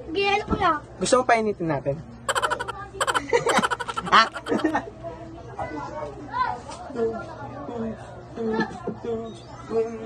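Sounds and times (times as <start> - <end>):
indistinct voices talking: 2.3 - 4.8.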